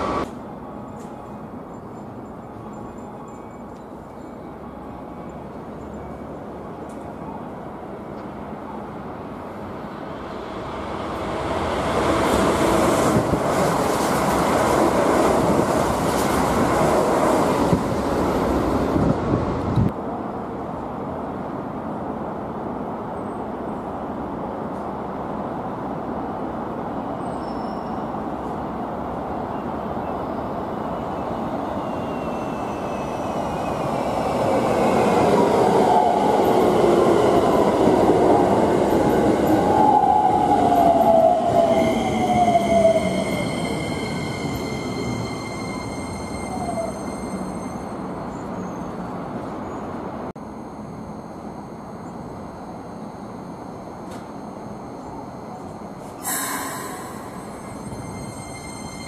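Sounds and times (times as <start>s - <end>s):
train whining tones: 30.8s - 49.0s, 50.4s - 59.0s.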